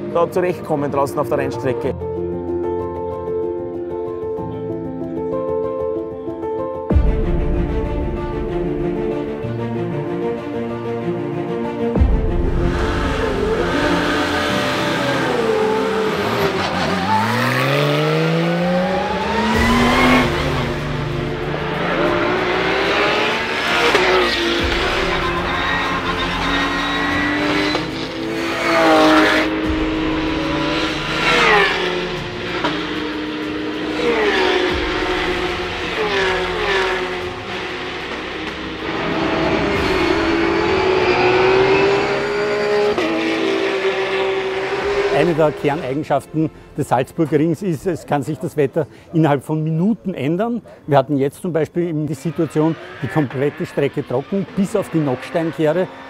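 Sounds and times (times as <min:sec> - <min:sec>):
race car engines revving: 0:12.3 - 0:46.7, 0:51.8 - 0:56.0.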